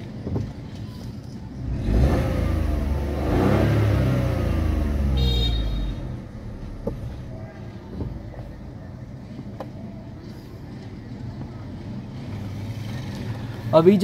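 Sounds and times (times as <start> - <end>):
car engine revving: 1.6 - 7.3.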